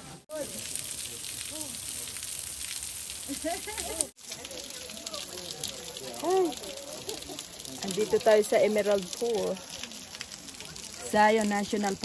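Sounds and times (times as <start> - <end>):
water drops pattering on rocks: 0.3 - 12.0.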